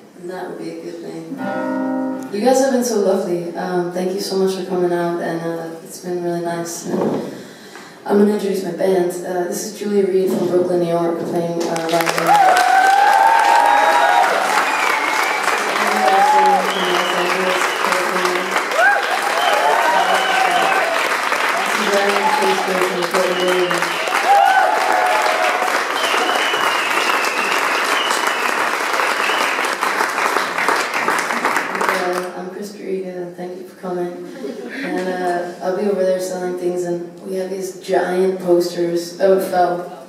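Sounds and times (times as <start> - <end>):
audience applauding: 11.8 - 32.3
voices: 15.6 - 18.6, 21.6 - 23.9.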